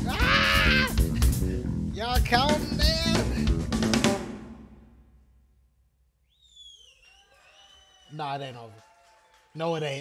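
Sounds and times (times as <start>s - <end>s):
high sweeping whistle: 6.3s - 8.0s.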